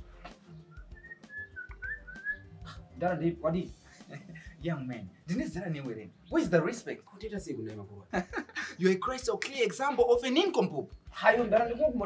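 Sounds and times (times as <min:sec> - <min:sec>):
quiet background music: 0:00.0 - 0:12.0
person whistling sliding notes: 0:00.7 - 0:02.5.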